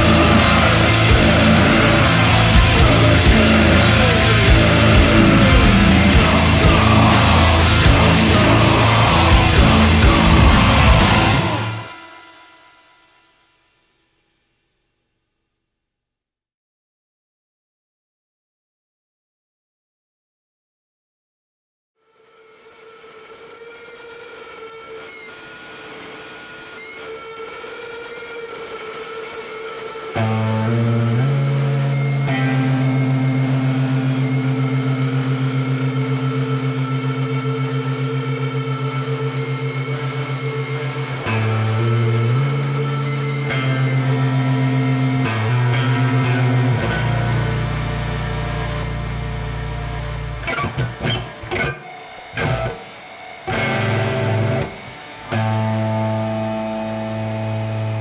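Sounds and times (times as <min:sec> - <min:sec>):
heavy low metal chords: 0:00.0 - 0:11.9
held drone: 0:00.0 - 0:12.9, 0:23.6 - 0:58.0.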